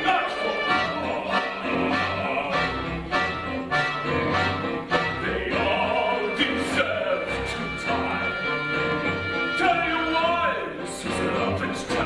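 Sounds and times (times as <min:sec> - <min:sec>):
strings and winds ensemble: 0:00.0 - 0:12.0.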